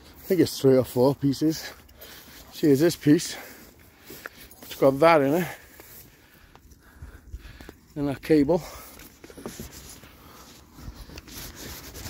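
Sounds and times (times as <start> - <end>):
footsteps walking through grass: 0.0 - 12.0.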